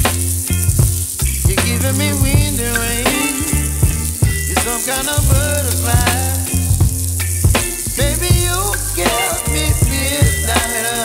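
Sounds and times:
background music with bass: 0:00.0 - 0:11.0
beans sizzling in oil: 0:00.0 - 0:11.0.

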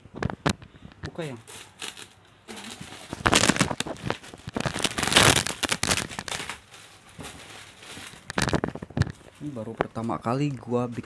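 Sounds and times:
plastic wrapping crinkling: 0:00.2 - 0:11.0.

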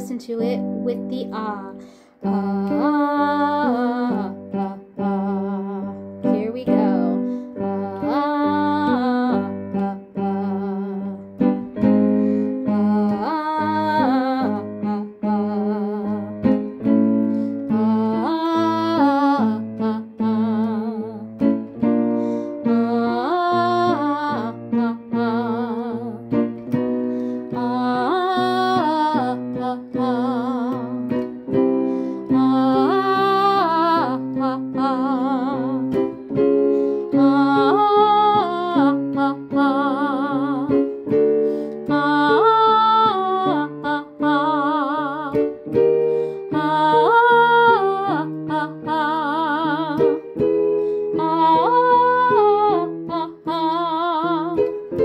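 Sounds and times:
instrumental accompaniment: 0:00.0 - 0:55.0
person singing vocal warm-up: 0:00.0 - 0:55.0.

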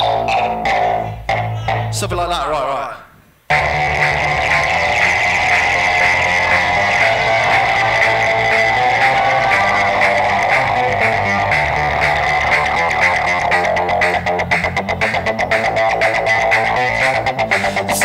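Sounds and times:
low synth bass notes: 0:00.0 - 0:02.3, 0:03.5 - 0:18.0
stuttering electronic pulses: 0:03.5 - 0:18.0
synthesizer pulsing sequence: 0:03.5 - 0:18.0.

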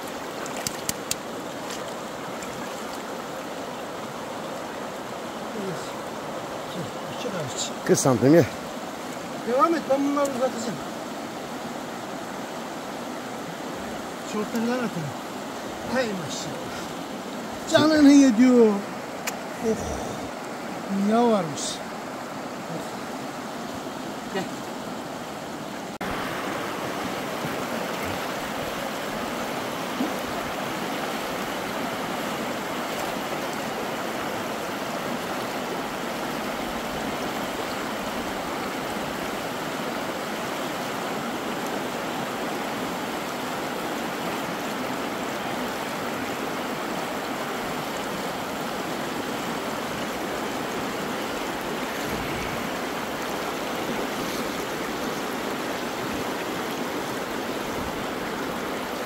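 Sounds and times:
river rushing over rocks: 0:00.0 - 0:59.0.

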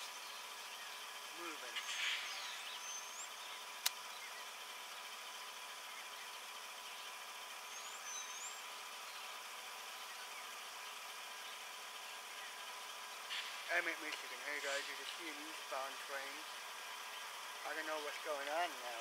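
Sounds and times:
faint outdoor background noise: 0:00.0 - 0:19.0
sharp click: 0:03.8 - 0:04.0.

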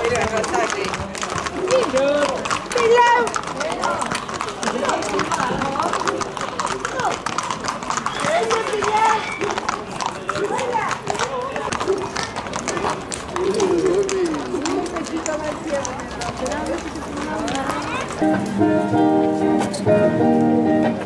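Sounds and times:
people talking: 0:00.0 - 0:18.4
hooves clopping on pavement: 0:00.0 - 0:21.0.

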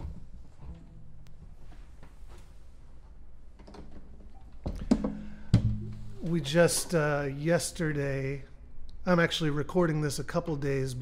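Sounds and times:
guitar handling knocks and rustles: 0:03.6 - 0:07.0
guitar thunks: 0:04.7 - 0:07.0.

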